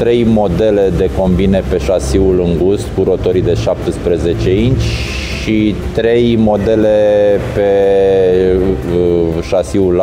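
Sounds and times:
background music: 0:00.0 - 0:10.0
man talking: 0:00.0 - 0:10.0.

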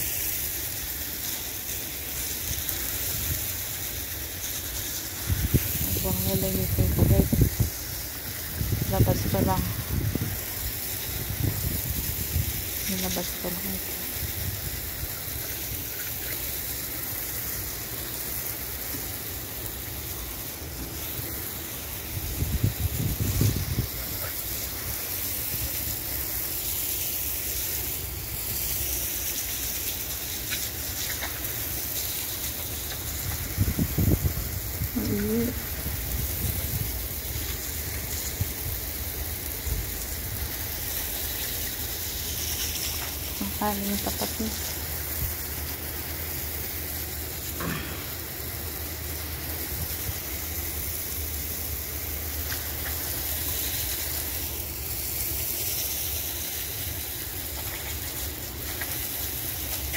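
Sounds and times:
outdoor hiss: 0:00.0 - 0:59.9.

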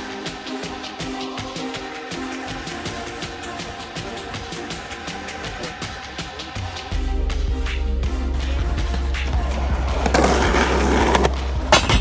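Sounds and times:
skateboard wheels rolling: 0:09.3 - 0:12.0
skateboard clack: 0:09.9 - 0:12.0.

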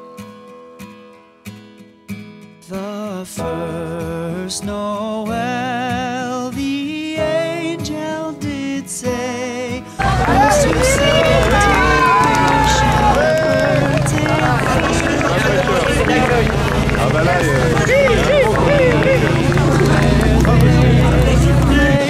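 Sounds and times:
crowd chattering: 0:10.0 - 0:22.0.

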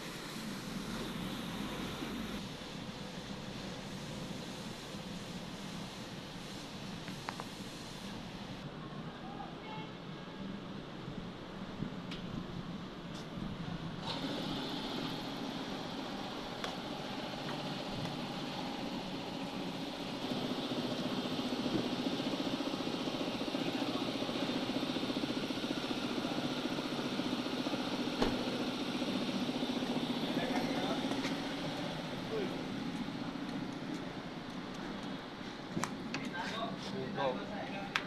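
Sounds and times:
water spraying onto car: 0:00.0 - 0:08.6, 0:14.0 - 0:34.4
pressure washer pump running: 0:14.0 - 0:34.0.

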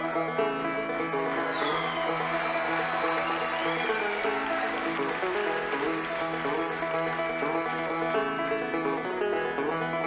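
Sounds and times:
banjo picking notes: 0:00.0 - 0:10.0
live instrumental band music: 0:00.0 - 0:10.0.

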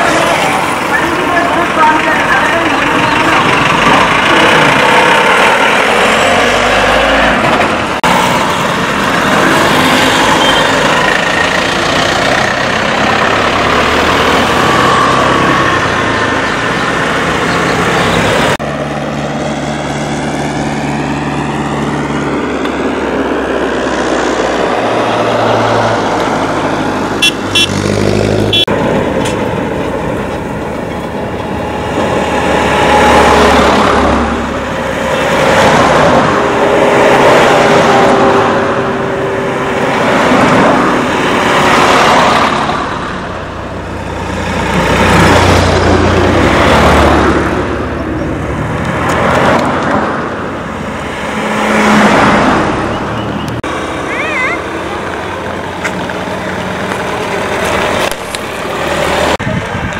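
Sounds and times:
motorbikes driving by: 0:00.0 - 0:18.9
bus driving by: 0:00.0 - 0:59.9
cars driving by: 0:00.0 - 0:59.9.

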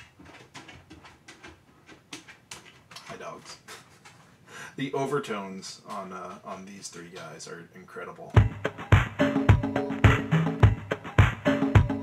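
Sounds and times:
lo-fi sampled drum hits: 0:08.4 - 0:12.0.

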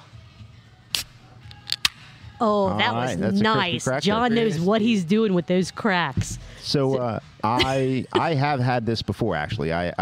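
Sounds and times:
beer can opening pop and hiss: 0:00.9 - 0:02.1.

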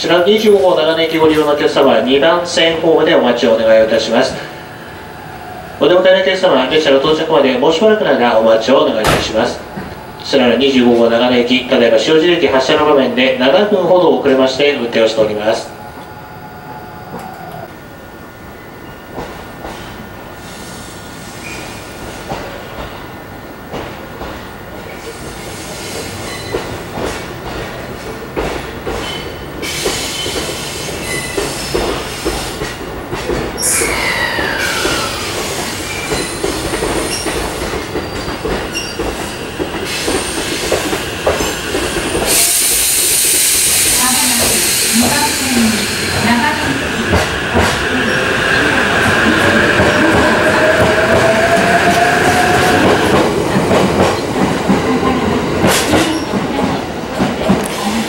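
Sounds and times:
train wheel and rail noise: 0:00.0 - 0:58.0
loud hiss: 0:20.3 - 0:22.3, 0:25.0 - 0:26.3, 0:29.6 - 0:32.6, 0:33.6 - 0:37.7, 0:39.2 - 0:47.0
falling squeal: 0:21.4 - 0:21.9, 0:33.6 - 0:37.4.

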